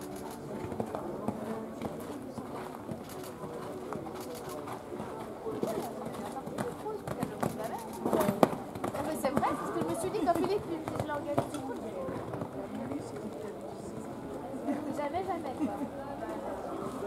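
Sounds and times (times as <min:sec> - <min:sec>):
indistinct conversation: 0:00.0 - 0:17.0.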